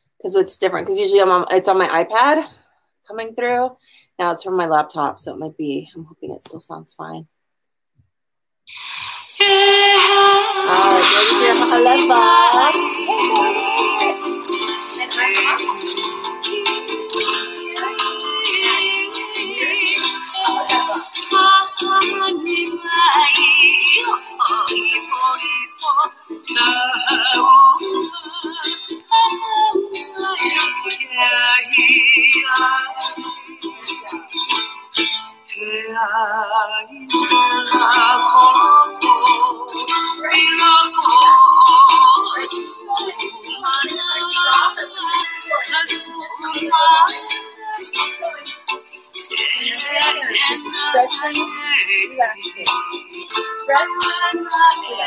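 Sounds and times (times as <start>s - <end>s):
thin song from laptop speakers: 9.2s - 55.0s.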